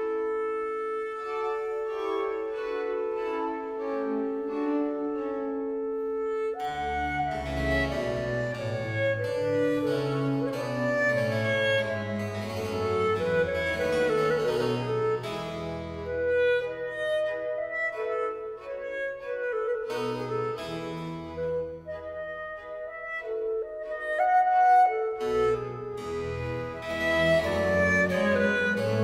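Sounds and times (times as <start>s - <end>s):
clarinet solo melody: 0.0s - 29.0s
strings: 0.0s - 29.0s.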